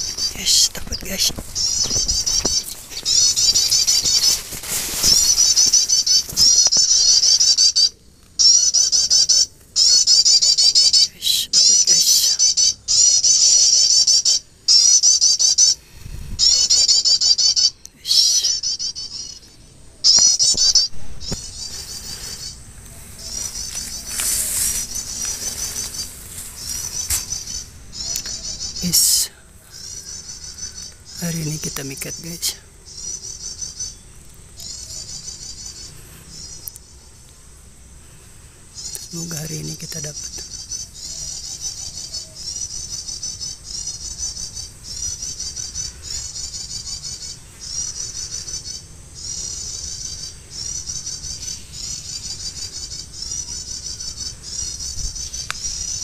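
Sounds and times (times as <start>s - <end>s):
bird chirping rapidly: 0.0s - 15.8s, 16.4s - 37.1s, 38.8s - 56.0s.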